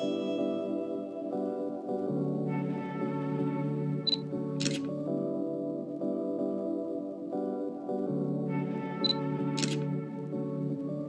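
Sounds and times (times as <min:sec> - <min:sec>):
soft background music: 0:00.0 - 0:11.0
camera shutter click: 0:09.6 - 0:09.8.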